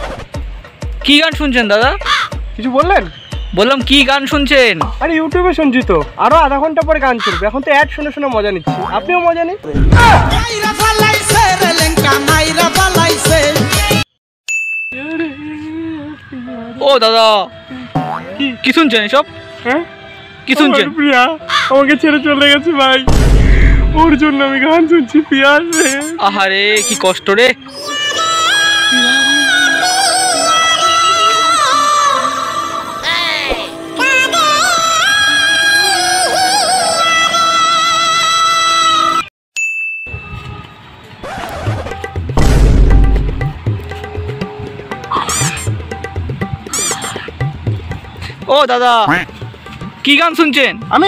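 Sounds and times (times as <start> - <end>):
faint outdoor background noise: 0.0 - 51.0
faint background music: 0.3 - 13.1, 15.0 - 38.6, 41.2 - 51.0
man singing: 10.1 - 14.1
high clear ding: 14.5 - 15.2, 39.6 - 40.4
cartoon boing sound effect: 17.9 - 18.4, 45.1 - 45.8.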